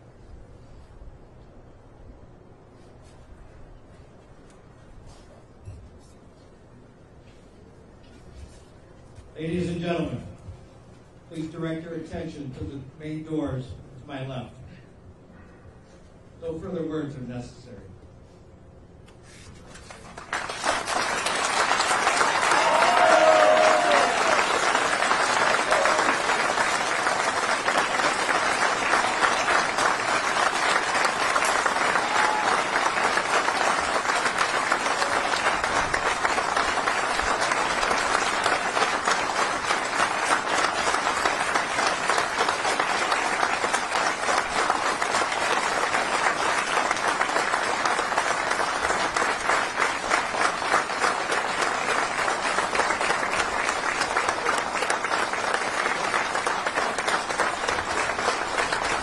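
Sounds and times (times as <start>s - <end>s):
crowd applauding: 19.8s - 59.0s.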